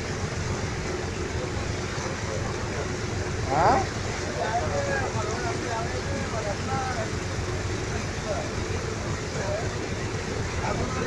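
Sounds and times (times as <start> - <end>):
motor vehicle rumble: 0.0 - 11.0.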